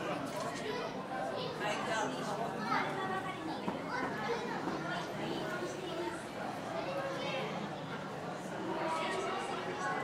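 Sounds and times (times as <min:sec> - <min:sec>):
crowd chatter: 0:00.0 - 0:10.0
children's voices: 0:00.5 - 0:10.0.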